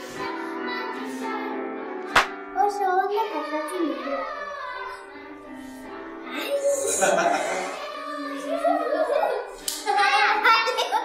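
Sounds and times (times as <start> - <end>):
sharp clap: 2.1 - 2.4
children's voices: 2.6 - 5.1, 6.3 - 11.0.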